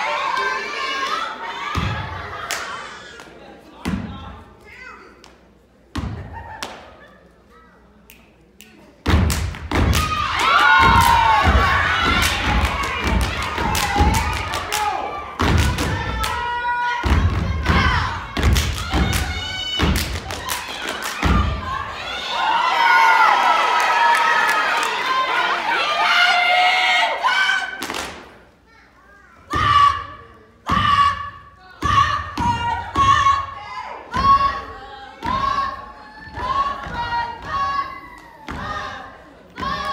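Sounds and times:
rhythmic clapping: 8.1s - 16.5s, 17.1s - 21.6s
voices cheering and whooping: 9.9s - 18.2s, 18.8s - 27.8s.

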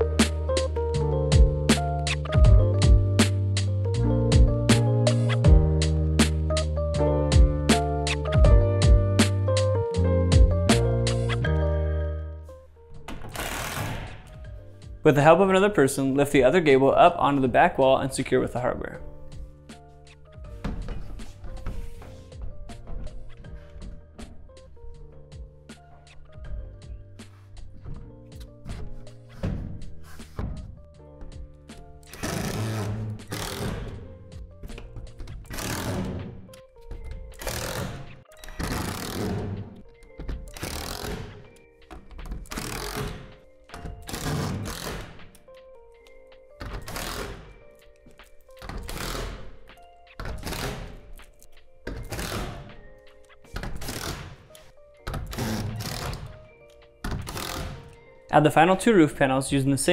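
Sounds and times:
background music: 0.0s - 59.9s.

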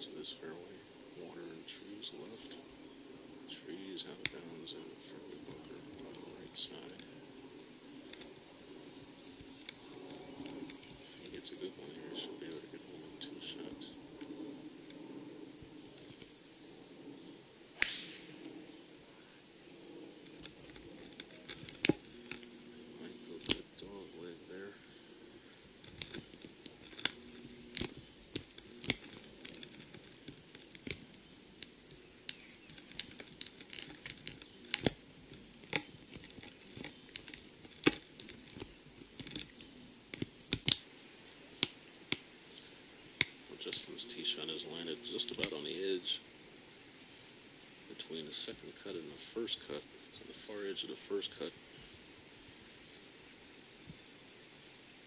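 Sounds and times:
faint voices: 0.0s - 8.8s, 9.8s - 16.2s, 20.6s - 28.0s, 43.4s - 46.3s, 47.9s - 51.6s
golf club striking ball: 17.8s - 18.5s
light clicks: 23.4s - 23.6s.

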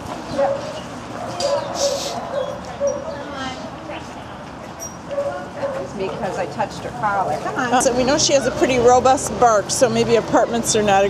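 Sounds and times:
dog barking: 0.3s - 3.3s, 5.1s - 5.9s.

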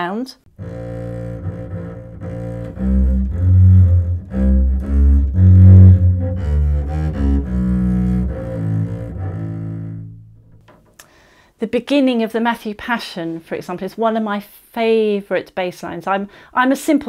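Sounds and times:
bowed double bass: 0.5s - 10.6s.

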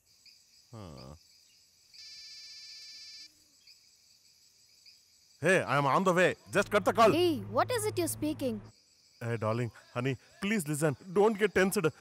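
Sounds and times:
insect trill: 0.0s - 6.8s, 8.7s - 12.0s
night insects chirping: 0.0s - 12.0s.

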